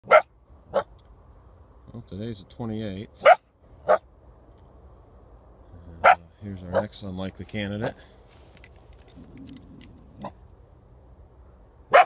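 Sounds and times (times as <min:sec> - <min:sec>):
dog barking: 0:00.0 - 0:00.9, 0:03.2 - 0:04.0, 0:06.0 - 0:06.9.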